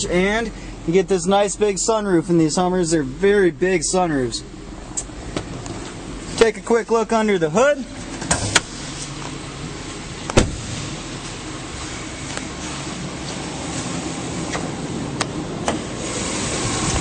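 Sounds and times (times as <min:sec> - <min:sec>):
car engine idling: 0:00.0 - 0:17.0
hood opening clicks: 0:04.9 - 0:06.5, 0:07.9 - 0:09.4, 0:10.2 - 0:10.7, 0:14.5 - 0:15.9
car door shutting: 0:08.0 - 0:08.8, 0:10.2 - 0:11.0, 0:14.4 - 0:17.0.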